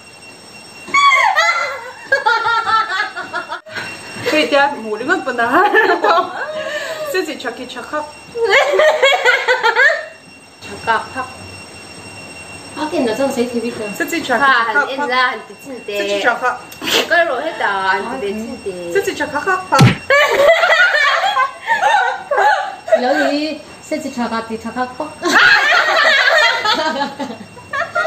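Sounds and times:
women laughing: 0.9s - 4.4s, 5.5s - 7.2s, 8.4s - 10.2s, 19.8s - 23.6s, 25.2s - 28.0s.

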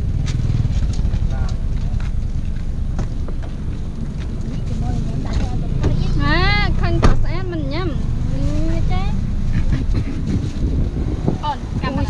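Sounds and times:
car engine rumble: 0.0s - 12.0s
road noise inside car: 0.0s - 12.0s.

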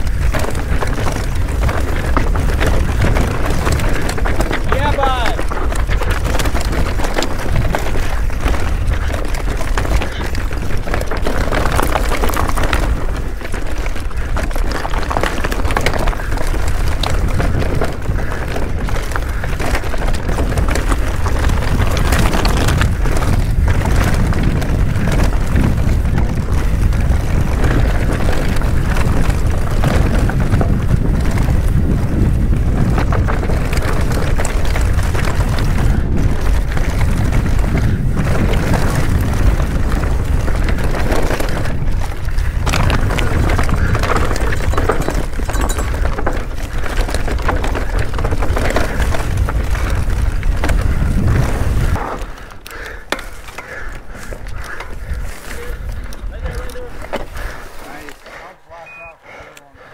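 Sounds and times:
bike knocks and rattles: 0.0s - 58.4s
bike tyre noise: 0.0s - 59.9s
wind buffeting microphone: 0.0s - 59.9s.

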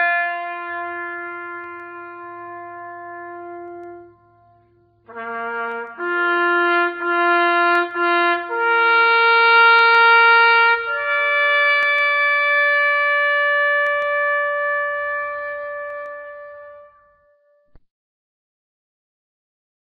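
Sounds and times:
bugle call: 0.0s - 17.5s.

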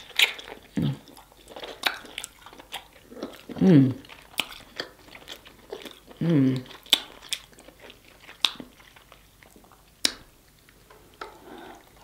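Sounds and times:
chewing and wet mouth sounds: 0.0s - 12.0s.

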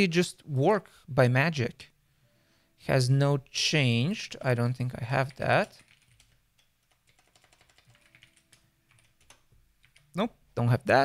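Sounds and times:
keyboard keys clicking: 5.6s - 10.2s.

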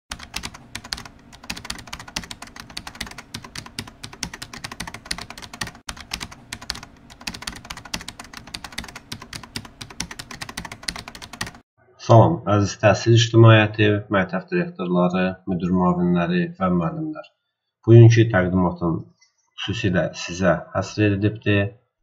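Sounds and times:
typing on computer keyboard: 0.1s - 11.6s.

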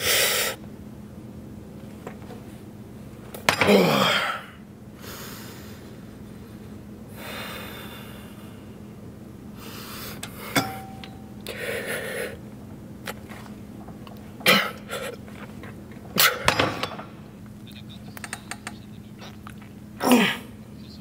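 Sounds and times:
low steady hum: 0.0s - 21.0s
forceful exhalations and grunts: 20.0s - 20.6s.

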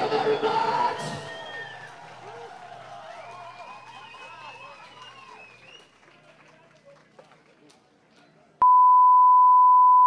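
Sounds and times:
faint crowd noise: 0.0s - 8.6s.

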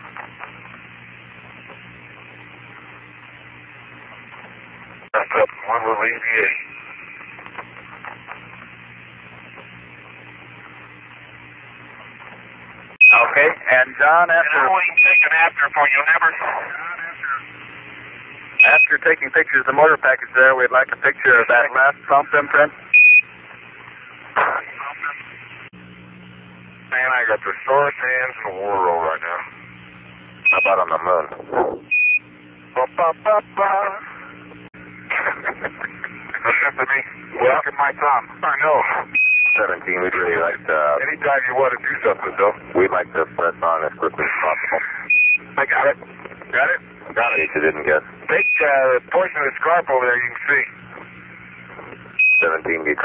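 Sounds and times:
low hum: 0.0s - 53.0s
radio hiss: 0.0s - 53.0s
unclear radio speech: 5.1s - 10.3s, 13.0s - 17.7s, 18.6s - 22.8s, 24.3s - 25.4s, 26.9s - 29.6s, 30.4s - 31.9s, 32.7s - 53.0s.

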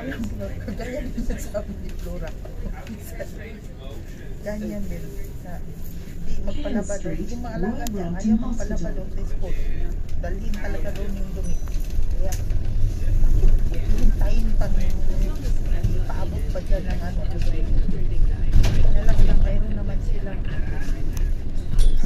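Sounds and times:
bus rumbling: 0.0s - 22.0s
passenger chatter: 0.0s - 22.0s.

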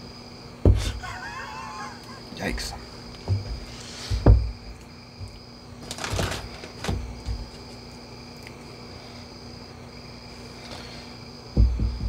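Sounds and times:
high insect trill: 0.0s - 12.0s
steady low hum: 0.0s - 12.0s
loud low thump: 11.6s - 12.0s.

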